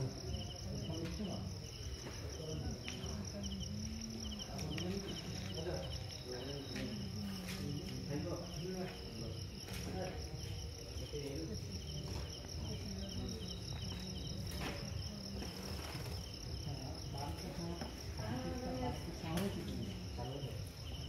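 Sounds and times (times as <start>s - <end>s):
crickets chirring: 0.0s - 21.0s.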